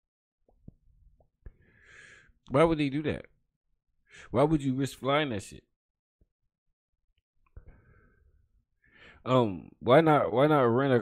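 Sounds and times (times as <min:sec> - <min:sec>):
breathy exhale: 0:01.5 - 0:02.4, 0:07.6 - 0:09.2.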